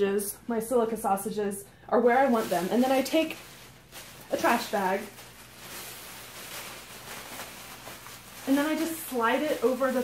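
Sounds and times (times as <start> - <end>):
plastic bag rustling: 2.0 - 10.0.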